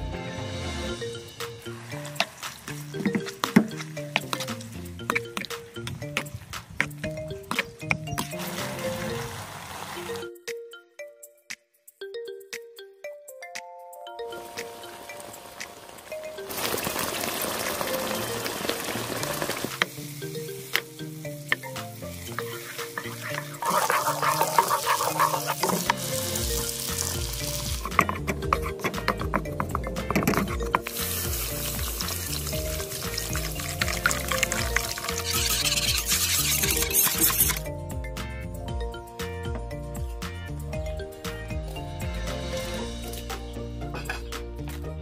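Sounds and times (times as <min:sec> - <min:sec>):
background music: 0:00.0 - 0:45.0
meat sauce sizzling in a wok: 0:15.2 - 0:20.7, 0:21.9 - 0:27.9, 0:30.9 - 0:37.6.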